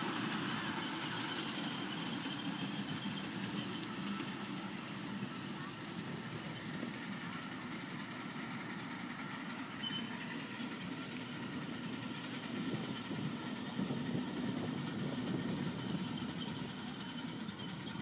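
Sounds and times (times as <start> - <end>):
steam locomotive rumbling: 0.0 - 18.0.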